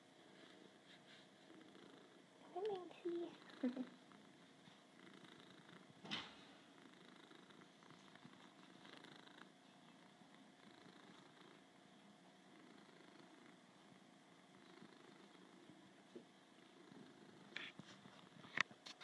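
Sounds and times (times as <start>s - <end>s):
cat purring: 0.0s - 18.7s.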